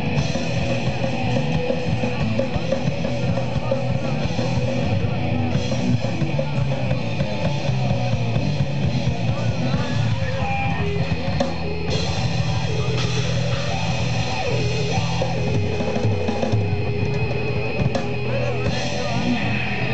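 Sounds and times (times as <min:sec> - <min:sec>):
drum kit: 0:00.0 - 0:19.9
electric guitar: 0:00.0 - 0:19.9.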